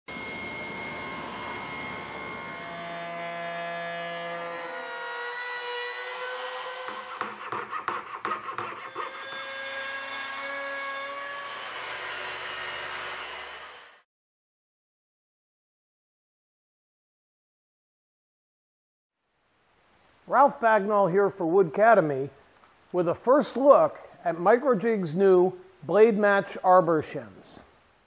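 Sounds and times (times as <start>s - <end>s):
table saw running: 0.1s - 14.0s
hand saw rasping strokes: 1.4s - 14.0s.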